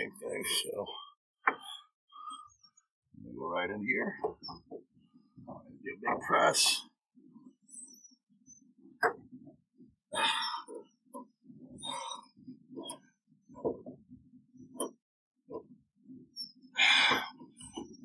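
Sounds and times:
person breathing with effort: 10.1 - 10.8, 16.8 - 17.4.

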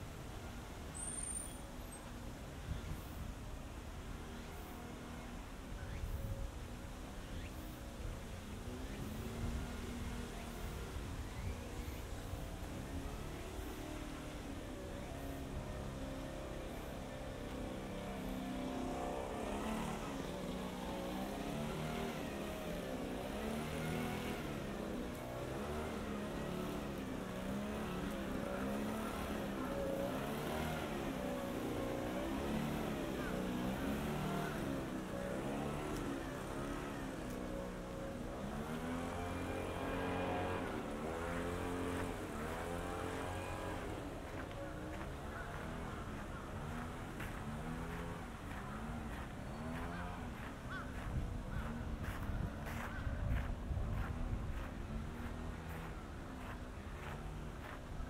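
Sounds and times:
vehicles driving past: 0.0 - 58.0.

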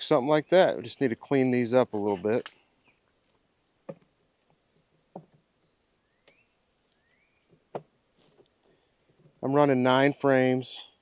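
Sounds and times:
wooden hive frames knocking: 5.0 - 5.5.

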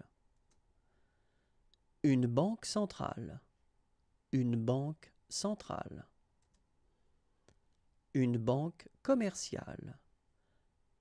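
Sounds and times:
computer mouse click: 6.4 - 6.7.

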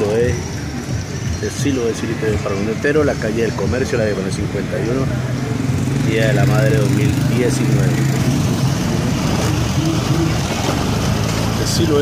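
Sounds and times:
motorcycle and car engines: 0.0 - 12.0.

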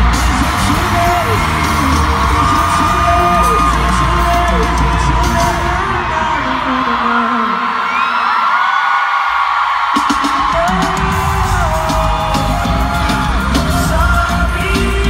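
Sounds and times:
person singing: 0.0 - 8.5, 10.2 - 15.0
live pop music: 0.0 - 8.7, 9.6 - 15.0
crowd screaming: 0.0 - 15.0.

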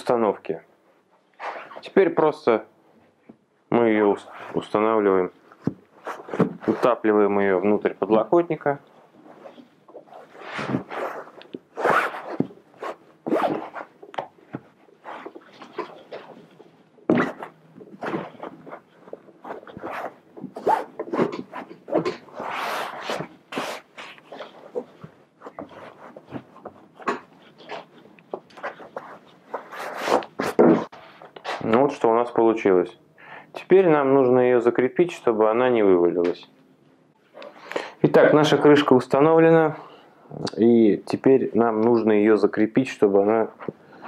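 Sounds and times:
fabric and foam rasping: 5.6 - 7.1, 9.0 - 31.6.

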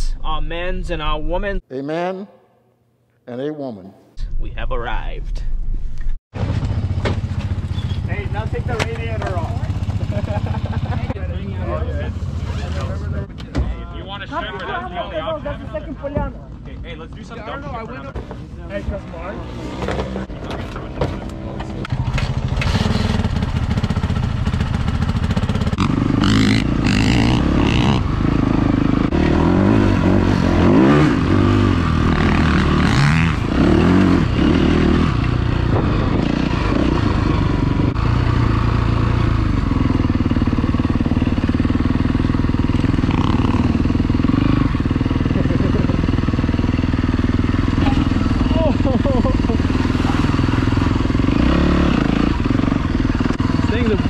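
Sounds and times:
vehicle engine revving: 19.3 - 54.0.

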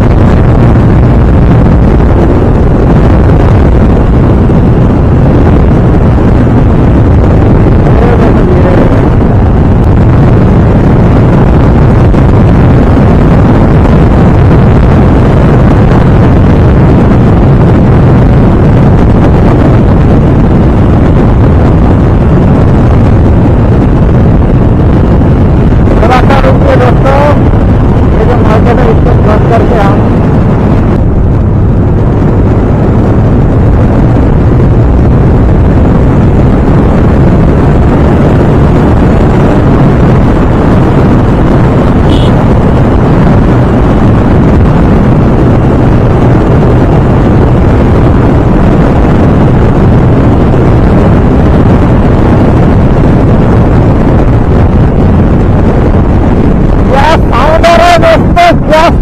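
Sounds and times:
wind rushing over microphone: 0.0 - 59.0
motorcycle engine at high revs: 20.8 - 50.3.

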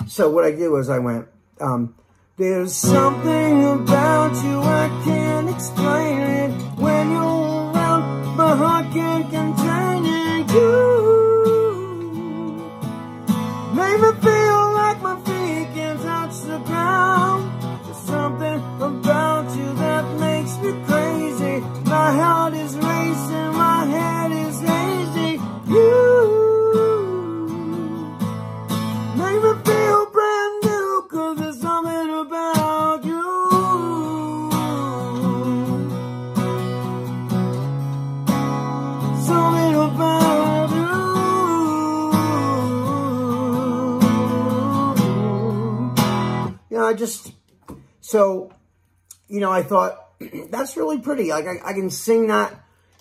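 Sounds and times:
man singing: 0.7 - 36.4, 39.0 - 47.3
acoustic guitar strumming: 2.4 - 46.7.

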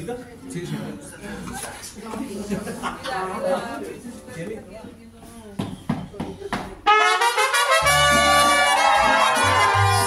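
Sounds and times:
mariachi band playing: 6.8 - 10.0
trumpets playing held notes: 6.9 - 10.0.

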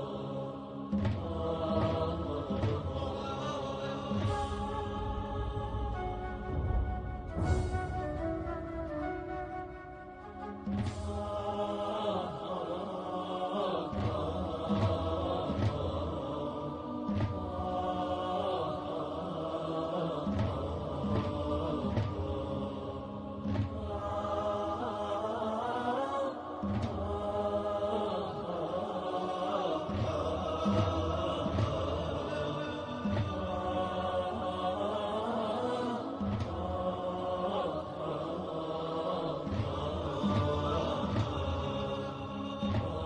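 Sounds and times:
chanted devotional vocals: 0.0 - 43.0.

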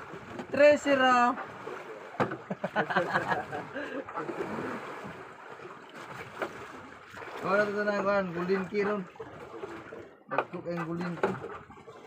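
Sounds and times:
sea water: 0.0 - 12.0
wind: 0.0 - 12.0.

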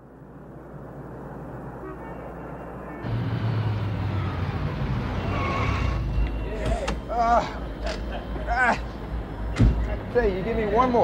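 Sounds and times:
low vehicle rumble: 0.0 - 10.9.

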